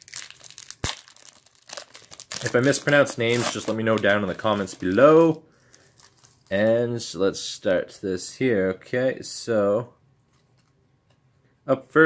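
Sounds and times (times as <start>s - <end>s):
foil wrapper tearing and crinkling: 0.0s - 6.5s.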